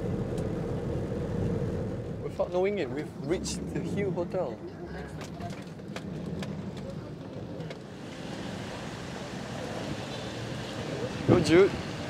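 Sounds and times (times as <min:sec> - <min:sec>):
street noise: 0:00.0 - 0:12.0
van interior rumble: 0:00.0 - 0:12.0.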